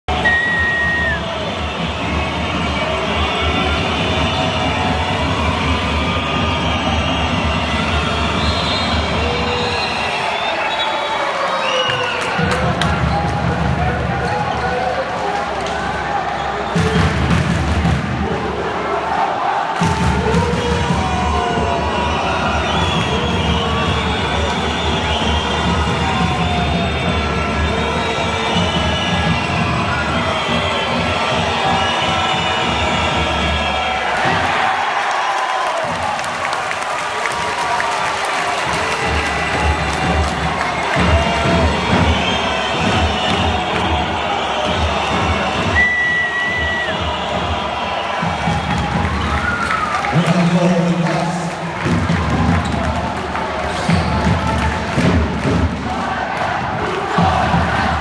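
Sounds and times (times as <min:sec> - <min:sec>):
crowd cheering: 0:00.0 - 0:58.0.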